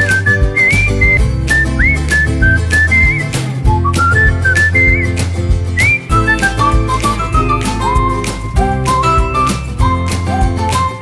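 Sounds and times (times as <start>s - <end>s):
instrumental accompaniment with beat: 0.0s - 11.0s
whistled melody: 0.0s - 11.0s.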